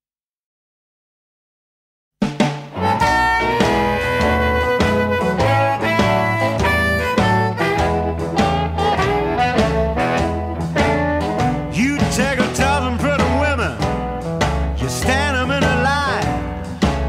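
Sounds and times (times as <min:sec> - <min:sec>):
blues record playing: 0:02.7 - 0:17.0.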